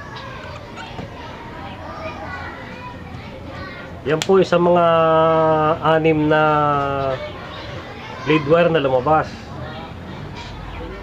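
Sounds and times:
distant children's voices: 0.0s - 11.0s.

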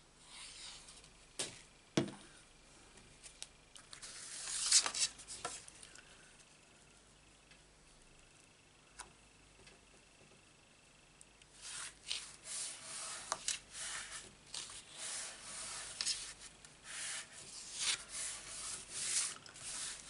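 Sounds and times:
hands rubbing card on paper: 11.6s - 20.0s.

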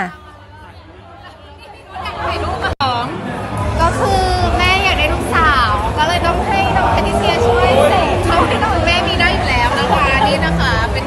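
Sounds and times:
close voices: 0.0s - 11.0s
crowd chatter in a hall: 0.0s - 11.0s.

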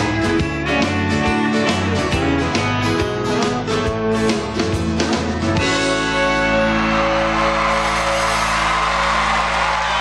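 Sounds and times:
audience cheering: 6.5s - 10.0s.

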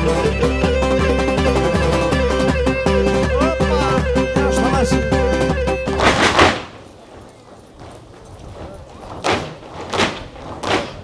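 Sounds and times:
folk dance music: 0.0s - 11.0s
short noisy swishes: 5.9s - 7.0s.

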